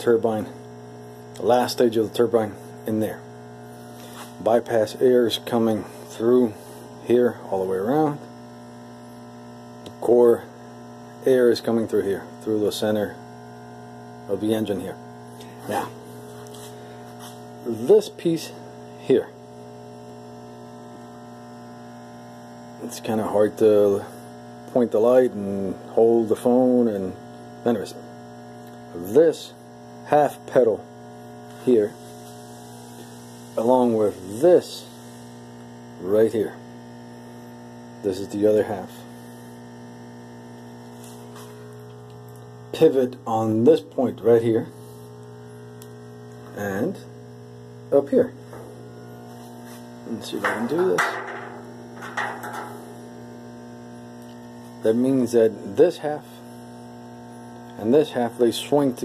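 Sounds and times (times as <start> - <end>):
low electrical hum: 0.0 - 59.0.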